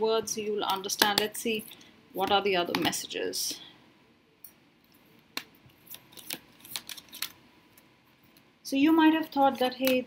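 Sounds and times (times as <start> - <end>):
cards clicking and tapping: 0.7 - 1.4, 5.4 - 7.4
cards sliding: 5.8 - 7.4.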